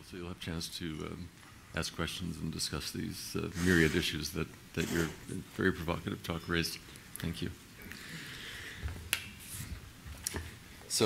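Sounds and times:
faint hall room noise: 0.0s - 11.0s.

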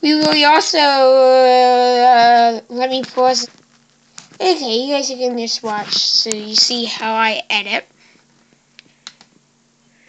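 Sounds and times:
laptop clicks: 9.0s - 9.4s.

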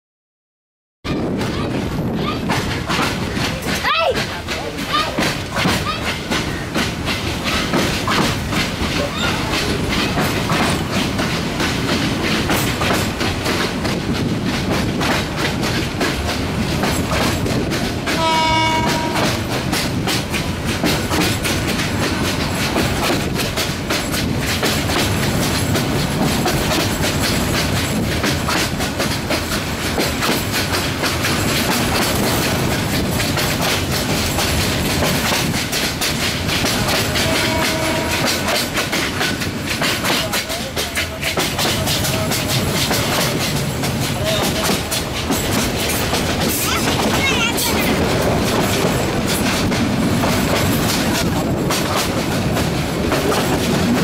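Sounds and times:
train rumble: 1.0s - 54.0s
wheels clattering over rail joints: 1.2s - 54.0s
locomotive horn blast: 18.1s - 19.6s, 37.1s - 38.5s.

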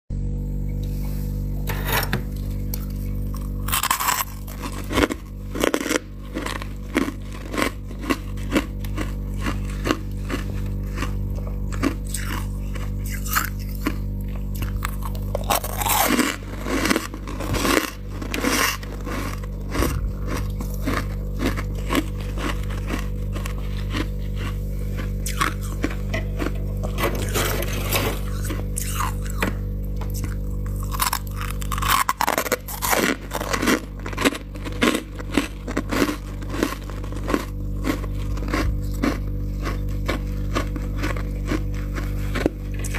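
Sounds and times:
steady low hum: 0.1s - 42.9s
frost crunching: 2.3s - 42.9s.

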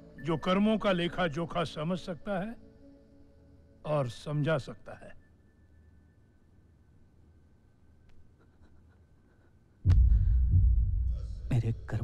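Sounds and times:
low boom and deep rumble: 9.9s - 11.7s.

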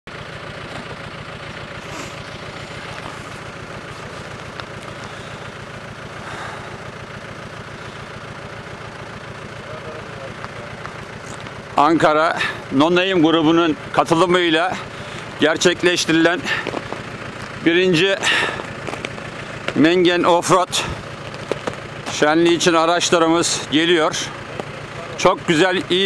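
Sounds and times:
tyre and road noise: 0.1s - 26.0s
vehicle engine running: 0.1s - 26.0s.

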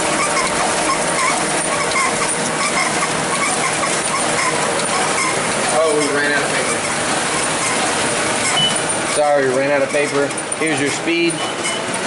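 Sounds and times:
printing press mechanical clatter: 0.0s - 12.0s
light rhythmic squeak: 0.1s - 12.0s.

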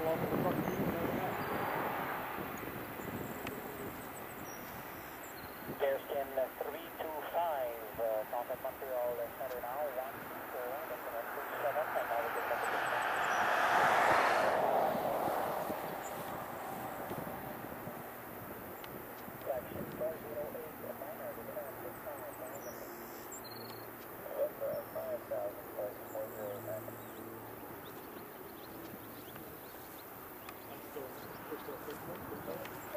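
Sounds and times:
jet engines roaring: 0.0s - 5.1s, 5.7s - 22.7s.

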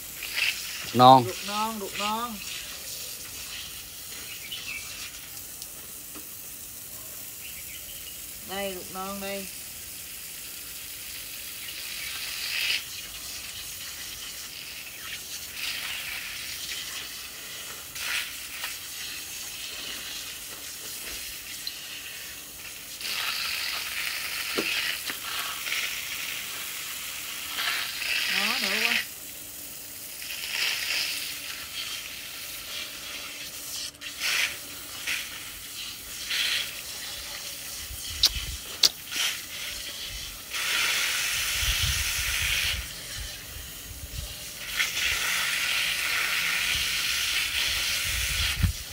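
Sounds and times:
hose water spraying and splattering: 0.0s - 48.9s.

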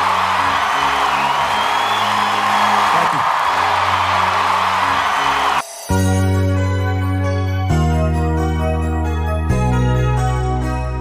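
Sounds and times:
audience cheering and applauding: 0.0s - 5.7s
background music: 0.0s - 11.0s.

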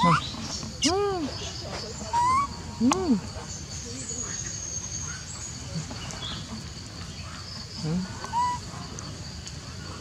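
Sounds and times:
monkey hooting coo: 0.0s - 0.3s, 2.1s - 3.2s, 8.0s - 8.7s
monkey squeak: 2.1s - 2.5s, 8.3s - 8.6s.

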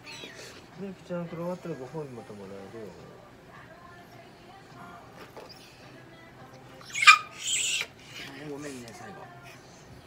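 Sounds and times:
dog yelping: 0.0s - 0.5s, 6.8s - 8.0s.

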